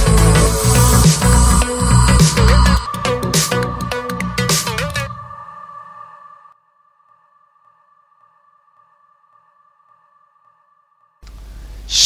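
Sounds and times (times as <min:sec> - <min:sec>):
pulsing synth tone: 0:00.0 - 0:04.0
electronic jingle music: 0:00.0 - 0:05.0
low background hum: 0:11.2 - 0:12.0.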